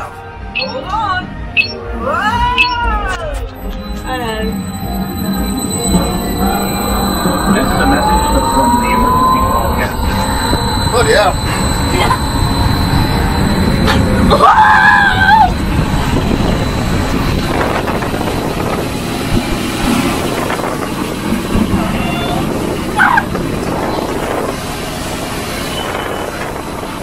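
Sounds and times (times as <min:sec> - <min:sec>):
wind blasting over microphone: 0:05.9 - 0:27.0.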